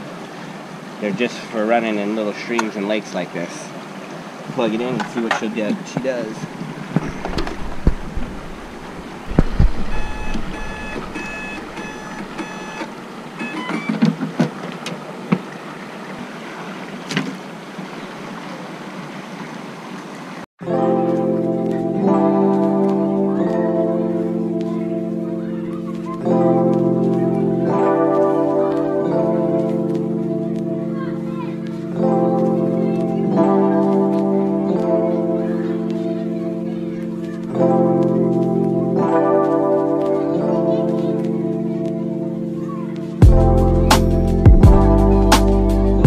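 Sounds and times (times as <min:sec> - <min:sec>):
creek water flowing: 0:00.0 - 0:46.0
short electronic beeps: 0:09.8 - 0:13.9
music with sustained chords: 0:20.6 - 0:46.0.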